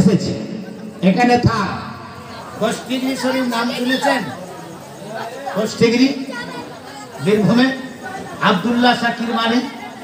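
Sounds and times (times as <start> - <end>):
man preaching into a microphone: 0.0 - 4.3, 7.2 - 9.8.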